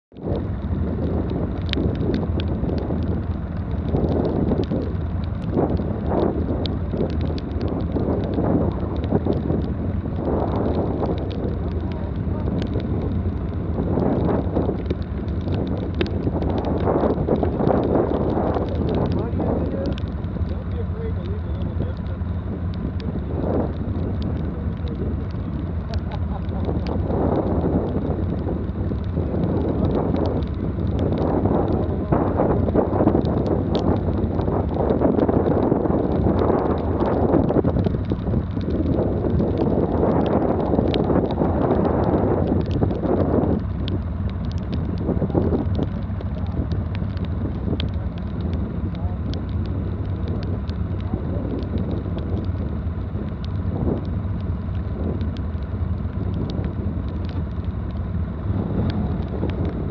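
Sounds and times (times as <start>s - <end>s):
wind and rain on microphone: 0.0s - 59.9s.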